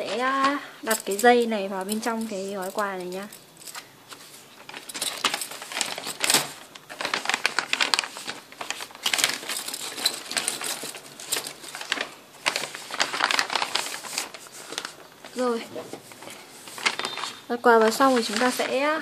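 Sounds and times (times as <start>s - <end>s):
paper rustling and crinkling: 0.0s - 19.0s.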